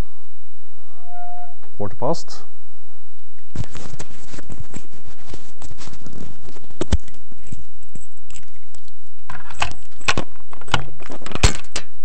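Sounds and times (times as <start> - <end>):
small hard objects rattling: 3.6 - 12.0.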